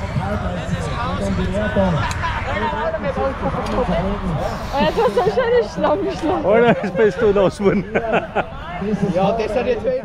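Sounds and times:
babble of overlapping voices: 0.0s - 10.0s.

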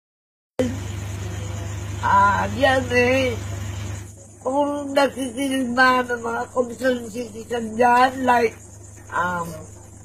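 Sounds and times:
steady low hum: 0.6s - 10.0s.

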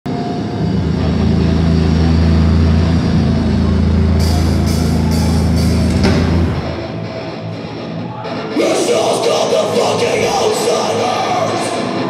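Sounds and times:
amplified electric guitar drone: 0.1s - 12.0s
crowd voices: 0.1s - 12.0s.

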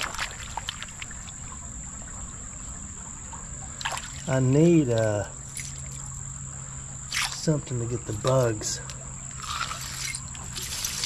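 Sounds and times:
creek water splashing and trickling: 0.0s - 11.0s
high-pitched insect drone: 3.1s - 11.0s.

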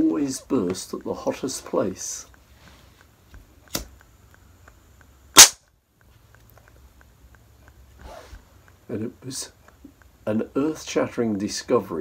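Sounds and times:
tubing bursting with sharp pop: 5.4s - 5.6s.

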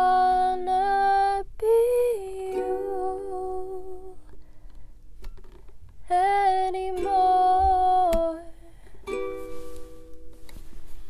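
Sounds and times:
ukulele notes: 2.3s - 4.1s, 6.6s - 11.0s.

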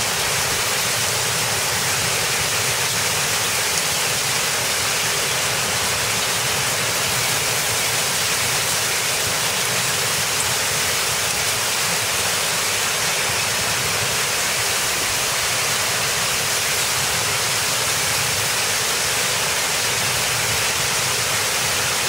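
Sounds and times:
heavy rain and hail: 0.0s - 22.0s.

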